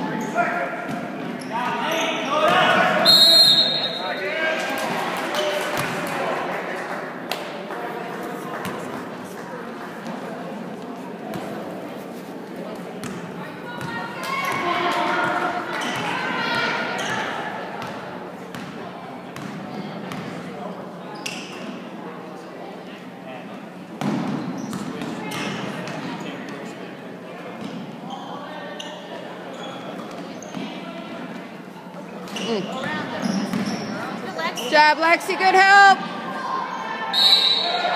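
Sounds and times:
voices of spectators and players: 0:00.0 - 0:37.9
sneaker squeaks: 0:00.1 - 0:04.2, 0:15.7 - 0:17.9, 0:21.1 - 0:21.8, 0:24.0 - 0:25.7, 0:27.6 - 0:30.8, 0:32.2 - 0:34.8, 0:36.6 - 0:37.9
basketball bouncing on wooden court: 0:19.4 - 0:20.3.

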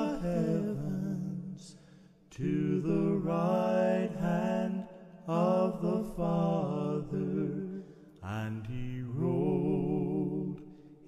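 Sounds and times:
male voices singing in harmony: 0:00.0 - 0:10.7.

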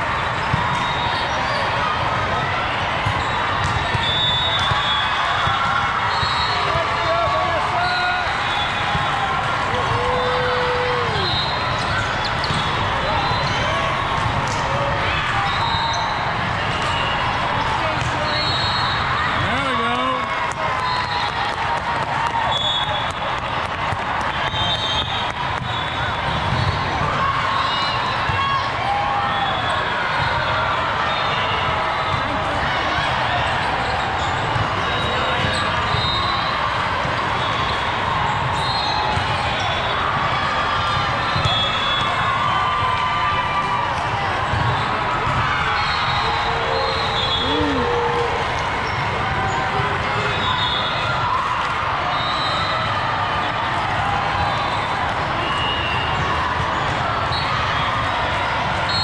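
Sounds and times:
hubbub of voices: 0:00.0 - 0:59.0
volleyballs being hit and bouncing: 0:00.4 - 0:05.8, 0:11.1 - 0:15.4.

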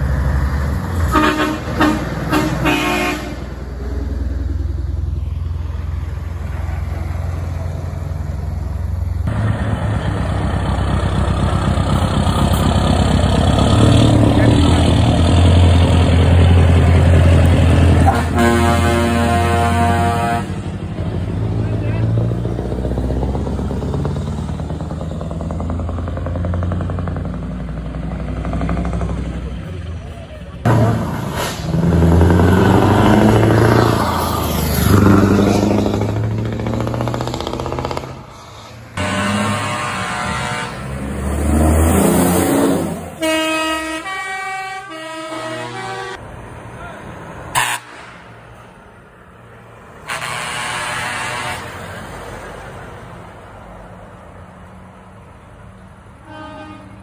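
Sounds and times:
diesel truck engines: 0:00.0 - 0:57.0
air horns: 0:01.0 - 0:03.5, 0:18.0 - 0:20.6, 0:39.0 - 0:41.0, 0:43.1 - 0:46.2, 0:47.5 - 0:48.3, 0:50.0 - 0:51.9, 0:56.2 - 0:57.0.

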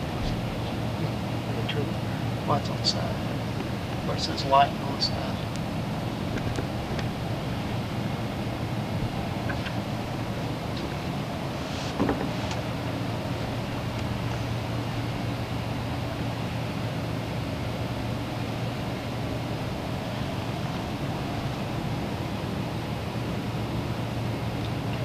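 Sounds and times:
low hum: 0:00.0 - 0:25.0.

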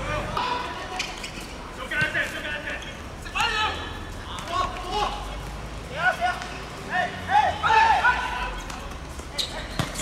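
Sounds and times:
outdoor background noise: 0:00.0 - 0:10.0
players shouting: 0:03.3 - 0:08.7.

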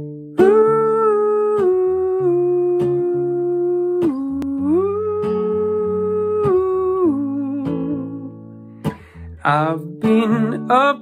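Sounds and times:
acoustic guitar picking: 0:00.0 - 0:11.0
person humming: 0:00.4 - 0:08.3.

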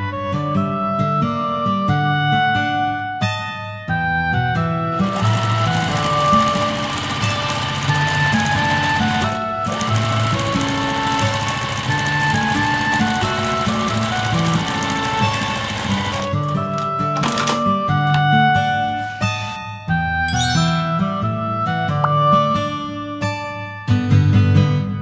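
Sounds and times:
light background music: 0:00.0 - 0:23.9
sewing machine stitching: 0:05.0 - 0:17.7.

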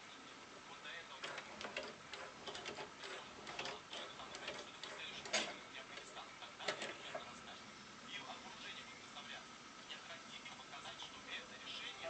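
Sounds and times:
cd changer mechanical ticking: 0:01.2 - 0:07.4.

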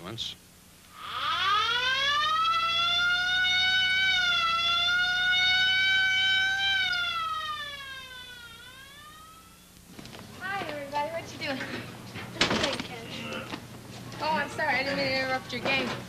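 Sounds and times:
ambulance siren wailing: 0:01.0 - 0:09.7.

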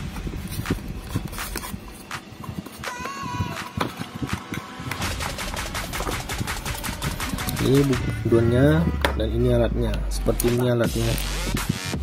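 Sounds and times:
cardboard and paper crackling: 0:00.0 - 0:08.1.

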